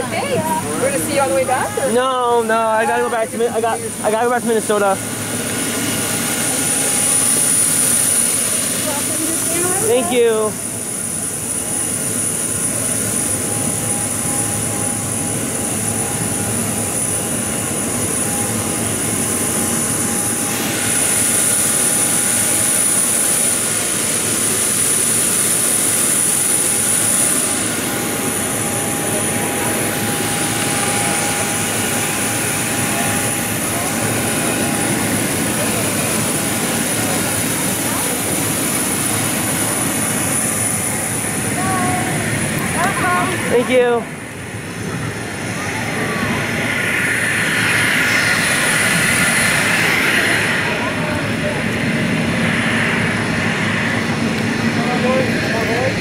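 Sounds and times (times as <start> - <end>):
turbine rush with high whine: 0.0 - 56.0.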